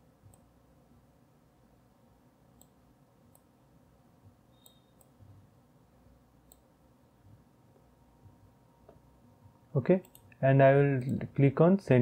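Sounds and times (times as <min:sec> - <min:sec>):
computer mouse clicks: 0:02.6 - 0:03.5, 0:04.5 - 0:05.2, 0:06.4 - 0:06.7, 0:10.0 - 0:10.4.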